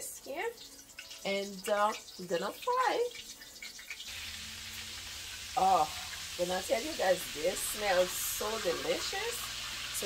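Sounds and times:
meatballs sizzling in oil: 0:00.0 - 0:10.0.

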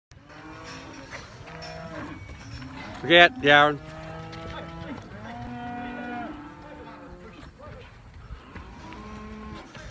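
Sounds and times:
cattle mooing: 0:00.1 - 0:07.4, 0:08.4 - 0:09.9.

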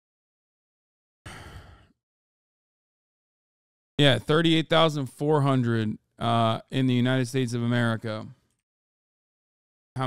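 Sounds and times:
breath into microphone: 0:01.3 - 0:02.0.

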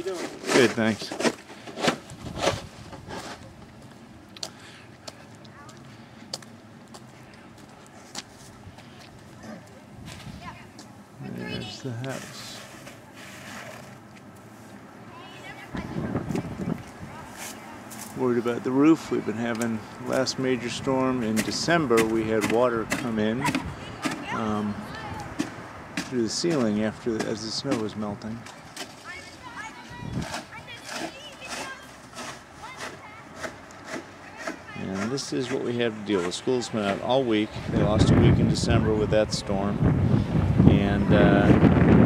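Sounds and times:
snow shovel scraping snow: 0:00.0 - 0:03.4, 0:11.7 - 0:14.0, 0:30.2 - 0:37.0
outdoor background noise: 0:00.0 - 0:42.0
footsteps crunching in snow: 0:05.7 - 0:10.6
distant children calling out: 0:14.9 - 0:18.0, 0:22.6 - 0:26.0, 0:28.4 - 0:37.7.

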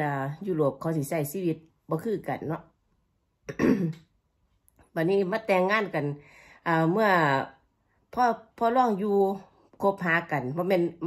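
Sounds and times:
woman clearing her throat: 0:03.5 - 0:04.1.

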